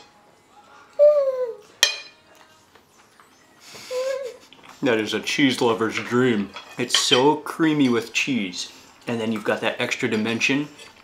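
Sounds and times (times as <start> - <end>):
man humming mmm: 0.9 - 1.7
cutlery clink: 1.8 - 2.5, 5.8 - 8.1.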